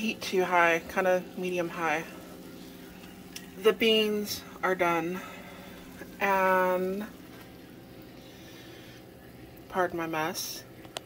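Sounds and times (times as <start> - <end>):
oil sizzling in a frying pan: 0.0 - 10.2.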